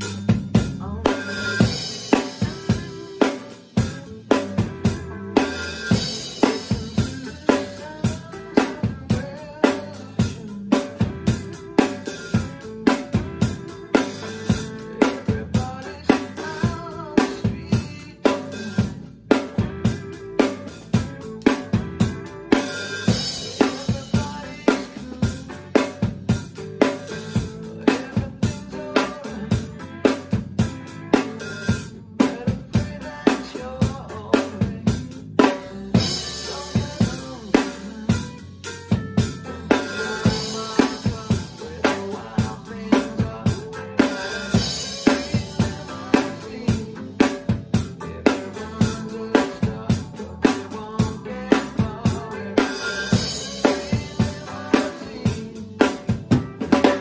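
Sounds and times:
cymbals: 0:01.1 - 0:08.4, 0:35.9 - 0:42.8, 0:43.9 - 0:47.0, 0:52.6 - 0:55.5.

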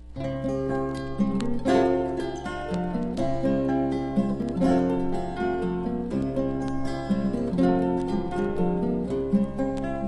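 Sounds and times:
acoustic guitar plucked melody: 0:00.0 - 0:10.0.

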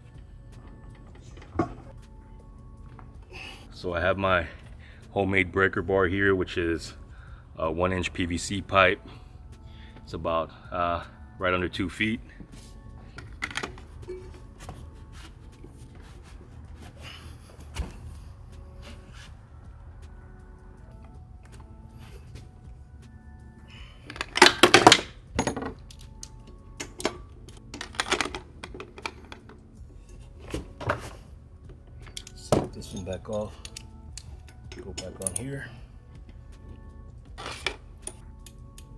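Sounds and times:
socket wrench metal clicking and clanking: 0:24.1 - 0:29.5, 0:32.0 - 0:35.5.

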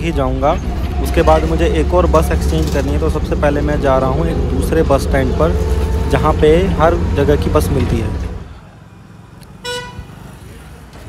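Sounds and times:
traffic rumble: 0:00.0 - 0:11.0
vehicle horn toot: 0:09.6 - 0:10.2.

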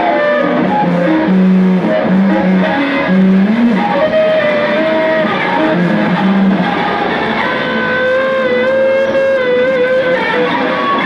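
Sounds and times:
distorted guitar noise: 0:00.0 - 0:11.0
held wavering guitar tone: 0:00.0 - 0:11.0.

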